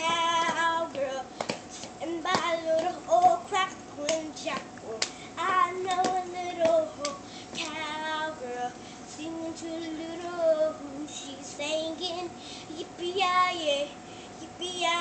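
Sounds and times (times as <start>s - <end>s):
girl singing unaccompanied: 0.0s - 15.0s
sharp claps: 4.1s - 5.2s.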